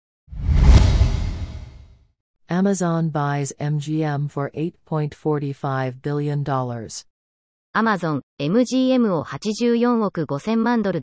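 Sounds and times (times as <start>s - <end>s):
deep rushing whoosh: 0.3s - 1.9s.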